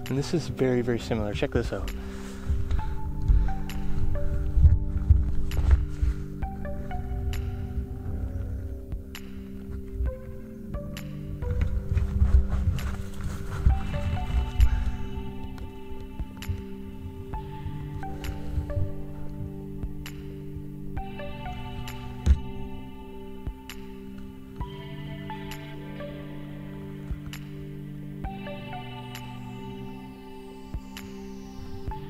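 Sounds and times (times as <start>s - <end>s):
slow music with bell-like tones: 0.0s - 32.0s
camera thumps and rumble: 2.5s - 20.0s.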